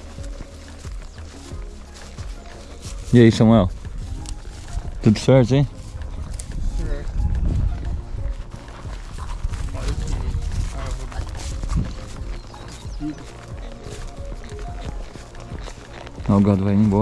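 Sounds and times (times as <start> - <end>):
faint music: 0.0 - 17.0
hoofbeats in grass: 0.0 - 17.0
horse tack noise: 0.0 - 17.0.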